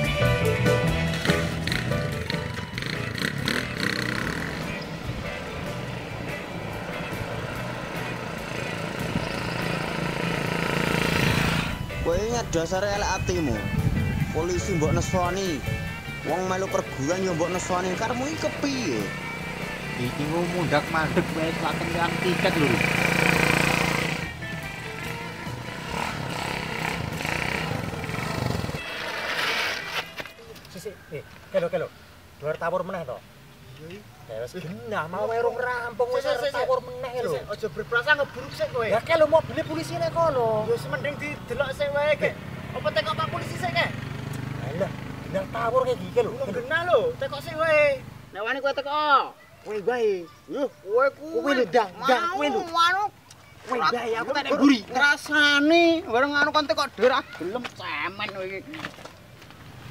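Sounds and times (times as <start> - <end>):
guitar music: 0.0 - 11.0, 11.6 - 28.9
road traffic noise: 0.0 - 59.9
vehicle passing: 0.9 - 12.8, 13.4 - 30.3, 36.6 - 48.6
motorcycle engine running: 1.0 - 5.0, 6.8 - 11.8, 18.8 - 24.4, 25.0 - 28.9.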